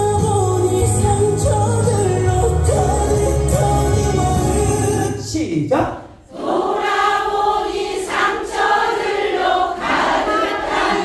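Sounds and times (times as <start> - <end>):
group singing in unison: 0.0 - 5.2, 6.2 - 11.0.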